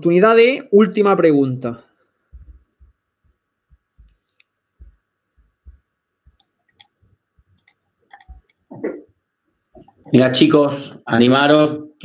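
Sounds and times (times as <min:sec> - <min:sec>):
faint low thumps: 0:02.3 - 0:04.2.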